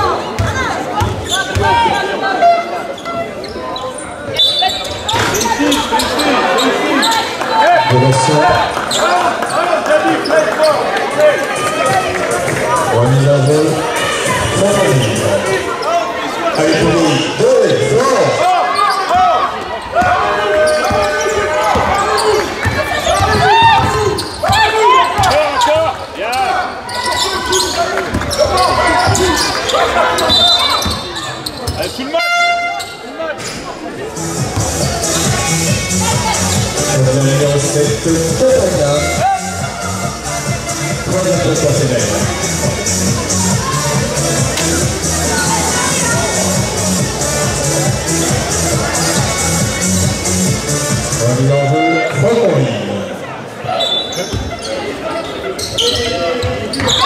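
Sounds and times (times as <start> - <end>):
echoing voices: 0.0 - 57.0.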